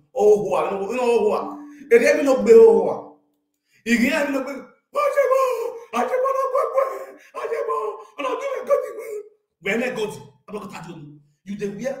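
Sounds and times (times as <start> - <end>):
man crying out long calls: 5.0 - 9.4.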